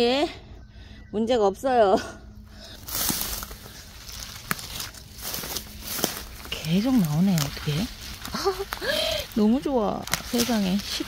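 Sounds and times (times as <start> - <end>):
dry grass rustling and crackling: 2.5 - 11.0.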